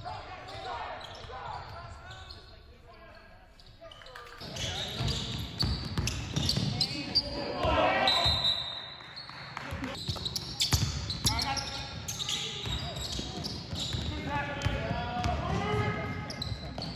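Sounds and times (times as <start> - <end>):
players' voices echoing: 0.0 - 8.6, 10.7 - 16.9
sneakers squeaking: 0.0 - 16.9.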